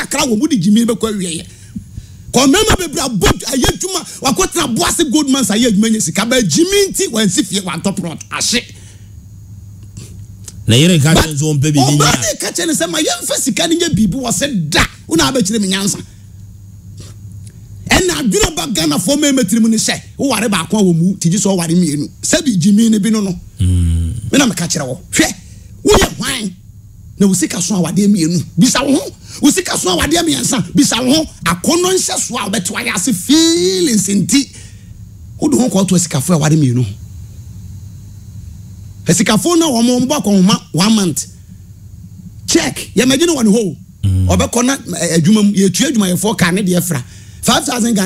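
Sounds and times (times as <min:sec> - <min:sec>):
low steady hum: 0:00.0 - 0:48.0
man speaking: 0:10.7 - 0:16.0, 0:22.6 - 0:24.9, 0:43.0 - 0:45.3.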